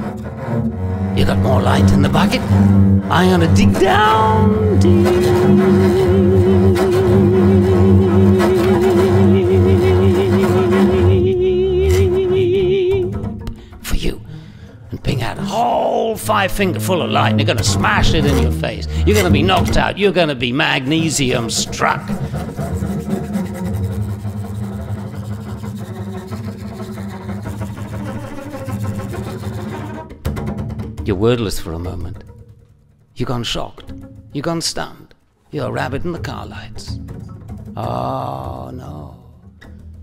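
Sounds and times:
bowed double bass: 0:00.0 - 0:40.0.

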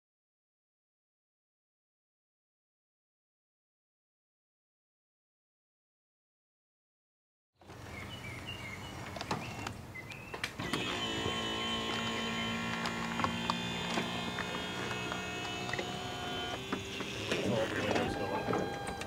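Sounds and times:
electric motor whine: 0:10.6 - 0:19.0.

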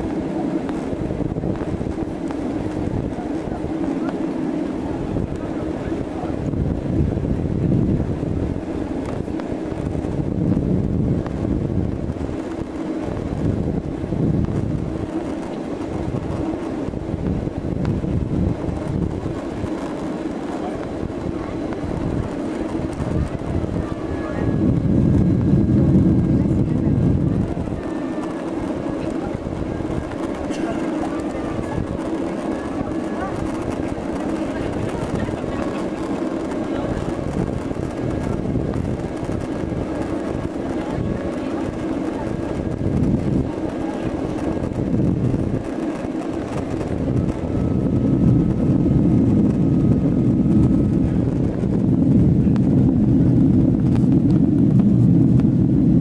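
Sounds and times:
airplane cabin engine rumble: 0:00.0 - 0:56.0.

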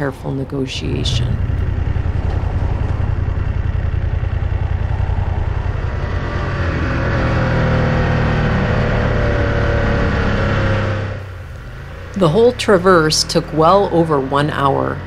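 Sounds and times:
motorcycle engine running: 0:00.0 - 0:15.0
road noise: 0:00.0 - 0:15.0
wind: 0:00.0 - 0:15.0.

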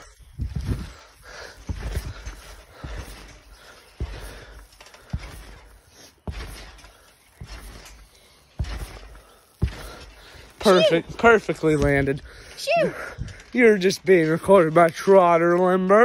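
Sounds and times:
dull thuds on trampoline: 0:00.2 - 0:12.2.

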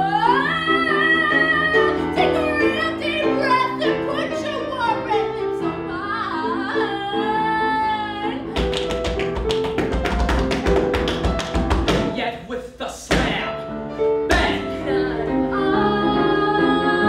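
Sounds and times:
woman singing with vibrato: 0:00.0 - 0:08.5, 0:14.5 - 0:17.0
piano: 0:00.0 - 0:17.0
sharp percussive taps: 0:08.6 - 0:12.2.

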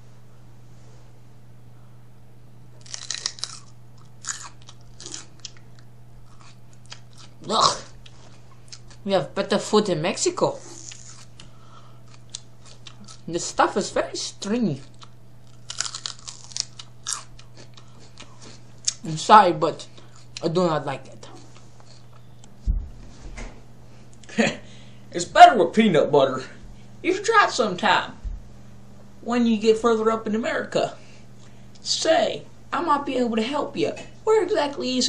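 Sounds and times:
celery crunching: 0:02.8 - 0:09.0, 0:10.4 - 0:13.6, 0:14.3 - 0:19.1, 0:21.2 - 0:22.5.

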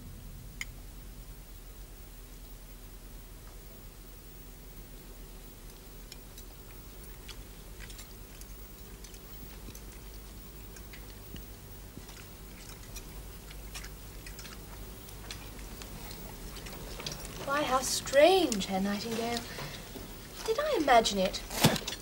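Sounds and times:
low steady hum: 0:00.0 - 0:22.0
chewing: 0:05.7 - 0:22.0.

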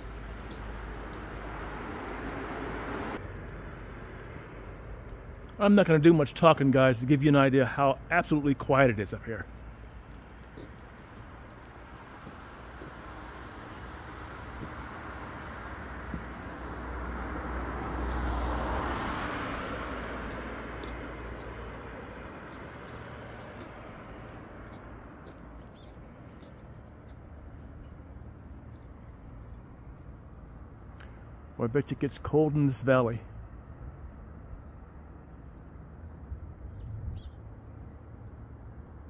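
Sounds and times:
car passing: 0:00.0 - 0:29.4.

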